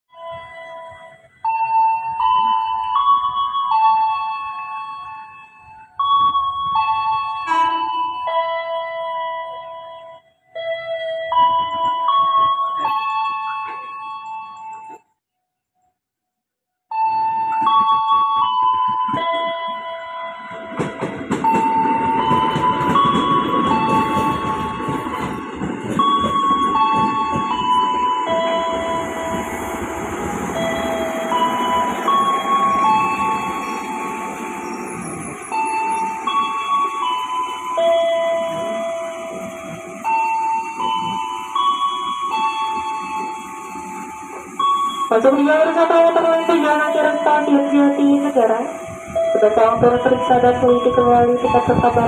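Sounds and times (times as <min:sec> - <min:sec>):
electric train rumbling past: 0:17.0 - 0:52.0
wheels clicking on rails: 0:17.4 - 0:48.4.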